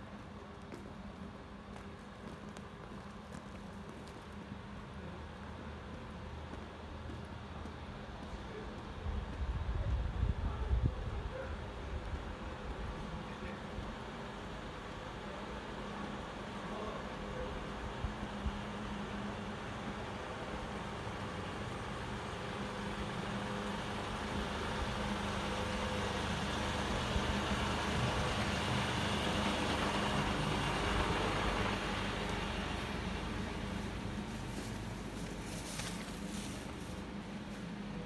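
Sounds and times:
truck engine passing: 17.7s - 35.6s.

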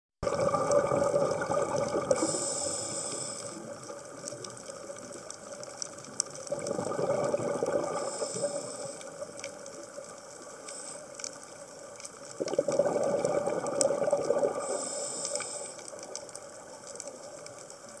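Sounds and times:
exhaled bubbles underwater: 0.2s - 10.5s, 11.9s - 18.0s
faint clicks: 1.4s - 18.0s
regulator hiss: 2.1s - 4.2s, 8.0s - 9.4s, 10.4s - 11.8s, 14.5s - 16.7s.

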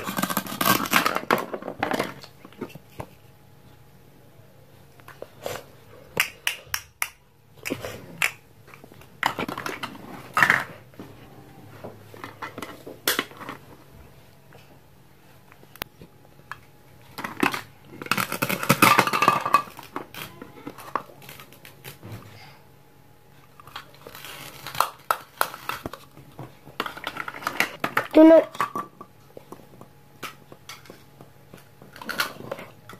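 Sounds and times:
plastic toy pieces clicking and knocking: 17.2s - 22.0s.

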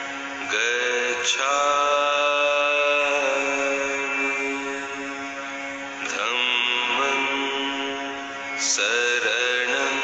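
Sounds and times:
steady drone: 0.0s - 10.0s
person chanting: 0.4s - 5.4s, 6.0s - 10.0s.

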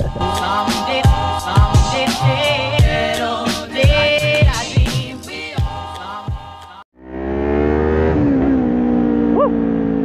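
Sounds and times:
rising and falling tone: 7.0s - 10.0s.

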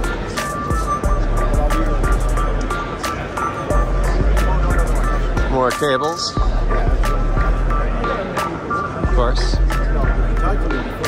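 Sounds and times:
background music: 0.0s - 11.0s
crowd chatter: 0.0s - 11.0s.

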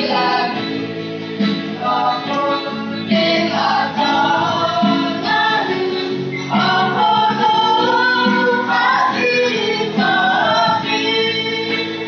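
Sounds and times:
small choir singing: 0.0s - 12.0s.

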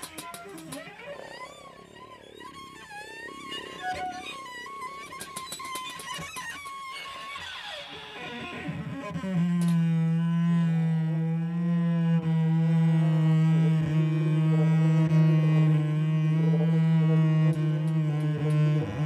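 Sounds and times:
sharp clicks: 0.0s - 1.0s, 5.0s - 7.4s
bowed cello: 0.0s - 19.0s.

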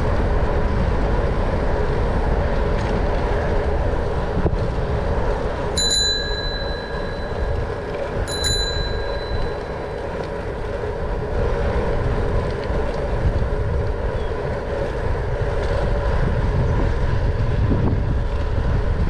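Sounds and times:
wind and rolling noise: 0.0s - 19.0s
bicycle bell ringing: 5.8s - 10.2s.

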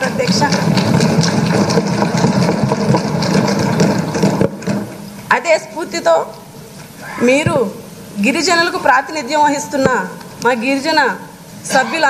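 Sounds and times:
people knocking on wooden desks: 0.0s - 5.0s.

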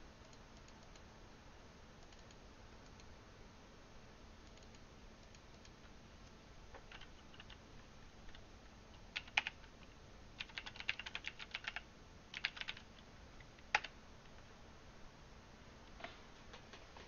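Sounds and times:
computer keyboard typing: 2.0s - 3.1s, 6.8s - 7.6s, 9.0s - 9.8s, 10.4s - 14.4s
faint clicks: 2.0s - 3.1s, 4.4s - 7.6s.

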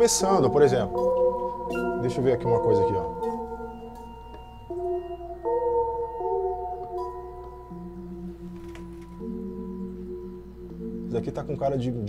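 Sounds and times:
sustained synthesizer chords: 0.0s - 8.6s, 9.2s - 11.6s.

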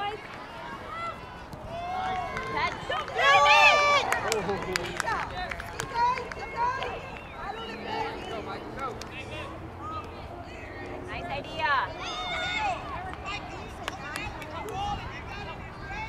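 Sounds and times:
people shouting outdoors: 0.0s - 16.0s.

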